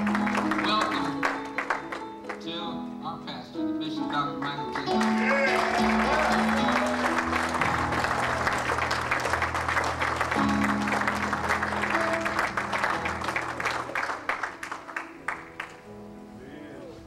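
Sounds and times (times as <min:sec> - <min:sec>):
audience clapping: 0:00.0 - 0:02.5, 0:04.2 - 0:15.9.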